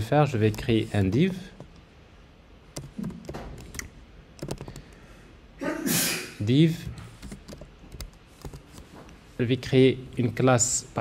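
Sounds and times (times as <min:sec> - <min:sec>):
keyboard typing: 0:00.4 - 0:01.8, 0:02.7 - 0:05.0, 0:07.2 - 0:08.9.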